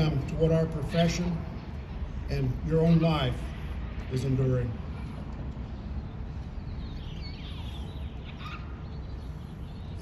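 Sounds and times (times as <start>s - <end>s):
birds chirping: 4.2s - 10.0s.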